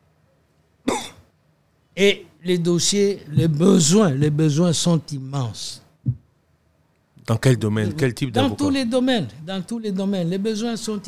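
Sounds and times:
man coughing: 0.9 - 1.3.

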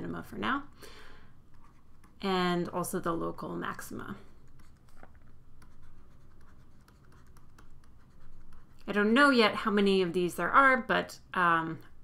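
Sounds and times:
stylus tapping and scratching screen: 1.4 - 9.6.

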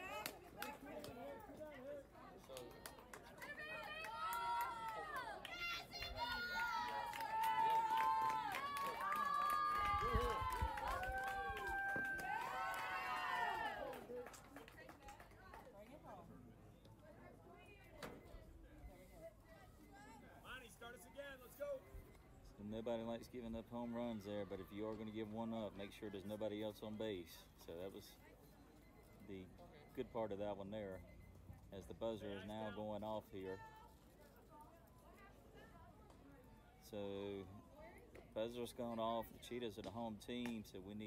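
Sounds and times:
women shouting and cheering: 3.4 - 14.0.

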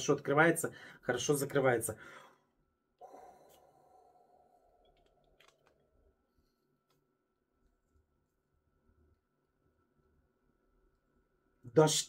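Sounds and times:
faint sighing breath: 2.0 - 5.5.

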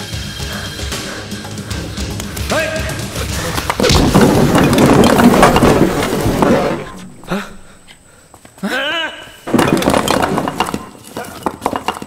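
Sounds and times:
bricks and debris clattering: 3.3 - 7.4, 9.5 - 12.0
brick wall crashing: 3.4 - 7.7, 9.4 - 12.0.

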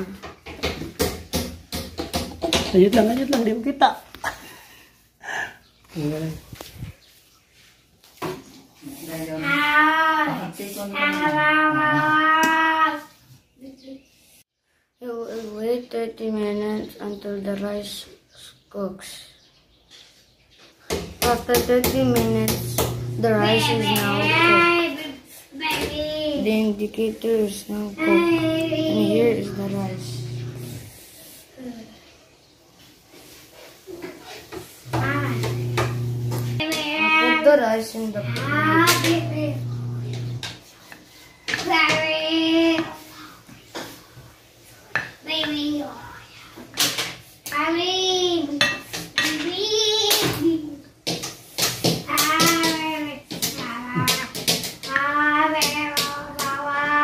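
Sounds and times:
person speaking: 21.3 - 24.8, 26.4 - 30.8, 37.2 - 40.4
child humming steady notes: 28.0 - 30.9.

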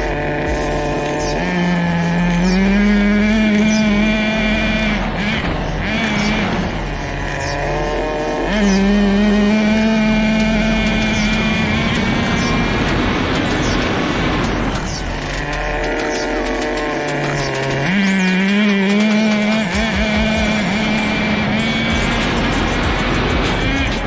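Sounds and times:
small nitro engine revving: 0.0 - 24.0.

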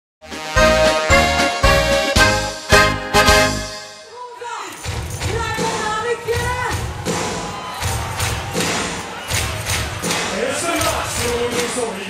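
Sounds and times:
live band playing: 0.2 - 11.1.

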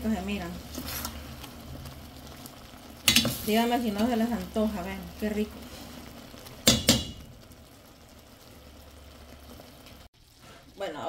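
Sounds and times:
sauce sizzling in a pan: 0.0 - 11.0.

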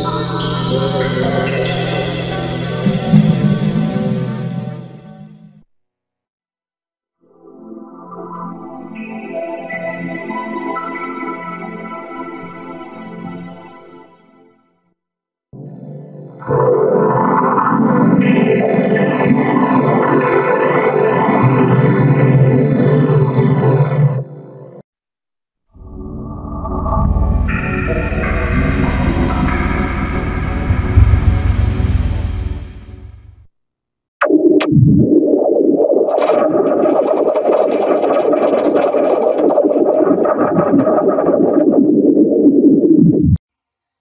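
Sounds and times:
steady droning band: 27.6 - 33.1
harsh noisy wash: 28.5 - 33.3.

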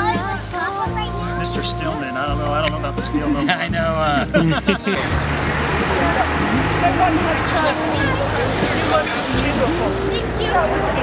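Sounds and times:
people chattering: 0.0 - 11.0
steady hiss and rumble: 0.0 - 11.0.

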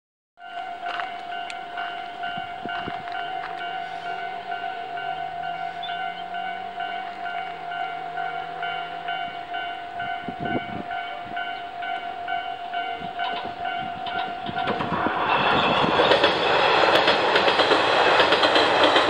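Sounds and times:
level-crossing warning bell: 0.4 - 19.0.

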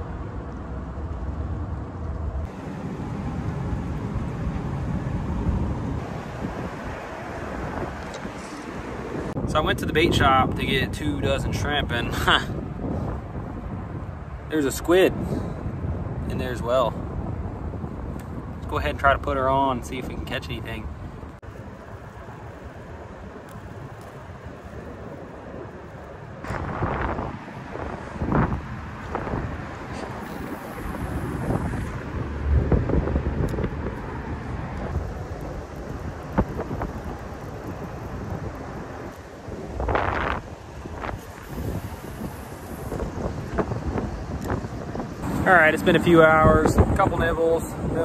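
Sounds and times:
wind buffeting microphone: 0.0 - 48.0.

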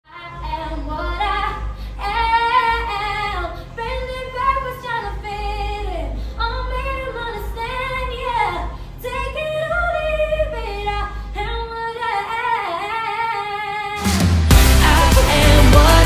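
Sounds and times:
woman singing into microphone: 0.1 - 14.0, 14.8 - 16.0.

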